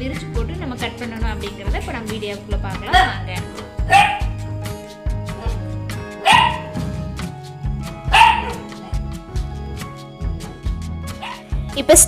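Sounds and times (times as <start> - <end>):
background music with beat: 0.0 - 12.0
small dog barking: 3.9 - 4.4, 6.2 - 6.8, 8.1 - 8.6, 11.2 - 11.4.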